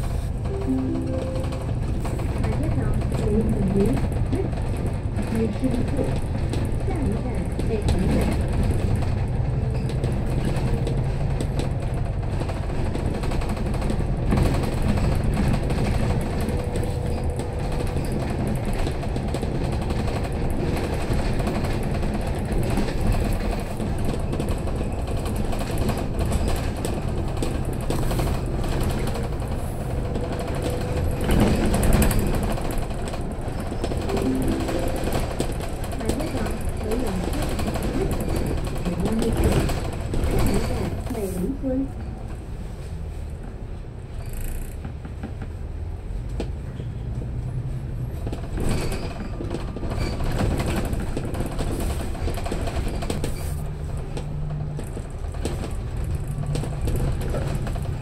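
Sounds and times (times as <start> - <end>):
bus engine drone: 0.0 - 58.0
road noise: 0.0 - 58.0
bus body rattling: 1.6 - 42.5, 48.0 - 58.0.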